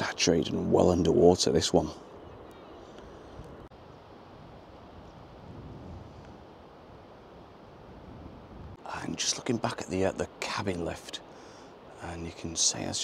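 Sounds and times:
light wind on microphone: 0.0 - 10.6.

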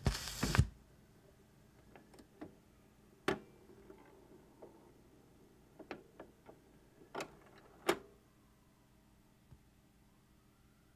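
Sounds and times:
vinyl surface crackle: 0.0 - 0.7.

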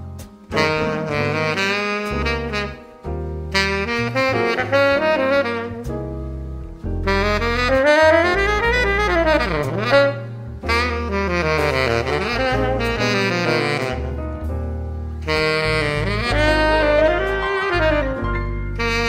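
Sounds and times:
electronic backing with bass: 0.0 - 19.0
tenor saxophone melody: 0.5 - 19.0.

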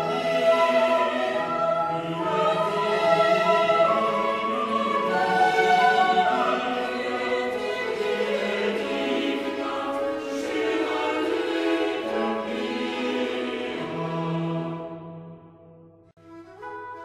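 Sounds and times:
choir singing with orchestra: 0.0 - 15.5.

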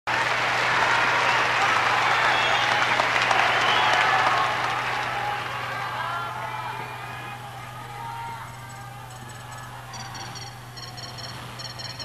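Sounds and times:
audience applause: 0.1 - 10.0
crowd voices: 0.1 - 12.0.

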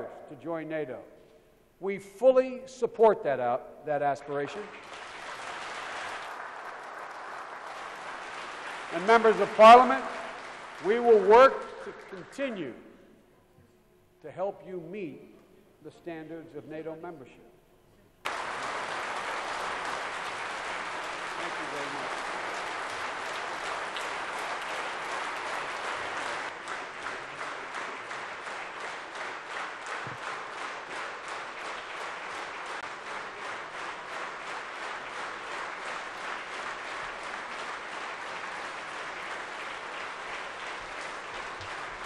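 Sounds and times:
rhythmic clapping in unison: 4.2 - 12.8, 18.2 - 42.0
audience applause: 4.6 - 12.3, 18.2 - 42.0.

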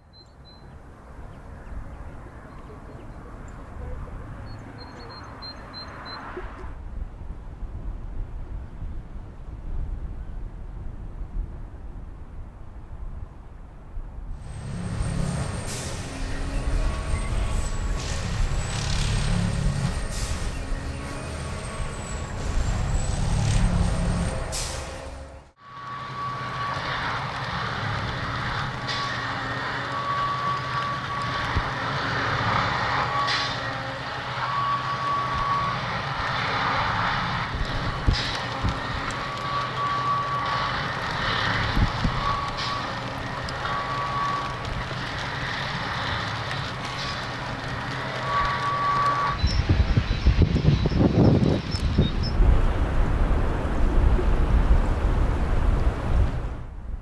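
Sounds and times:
high warning beeps: 4.4 - 6.3.

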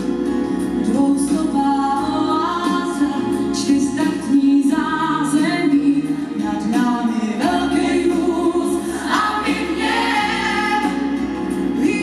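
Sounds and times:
woman singing into microphone: 0.8 - 12.0
choir singing held notes: 8.9 - 11.2.

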